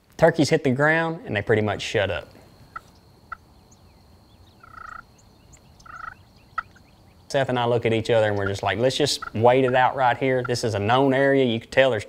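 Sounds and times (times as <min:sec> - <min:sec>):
turkey gobbling: 0:02.6 - 0:10.9.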